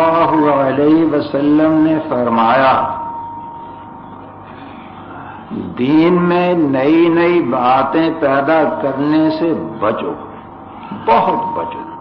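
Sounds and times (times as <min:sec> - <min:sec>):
man speaking: 0:00.0 - 0:03.0, 0:05.5 - 0:10.3.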